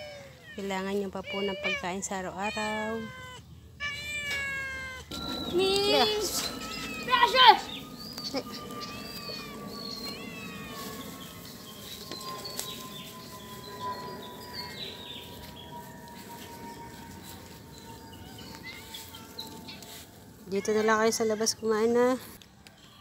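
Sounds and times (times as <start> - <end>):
faint thin whine: 5.1 - 20.6
high chirping calls: 5.1 - 22.0.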